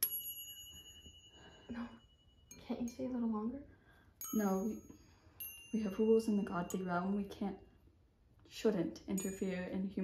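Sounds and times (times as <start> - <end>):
bright chime ringing: 4.2 - 7.7.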